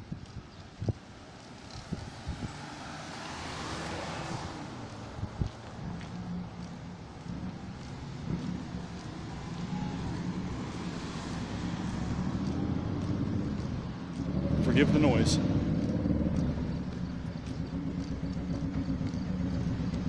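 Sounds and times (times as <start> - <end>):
car passing: 0.8 - 20.0
motorcycle engine: 1.7 - 20.0.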